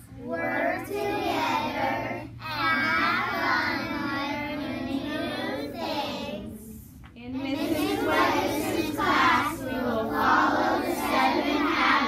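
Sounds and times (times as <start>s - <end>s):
young children chanting: 7.6s - 12.0s.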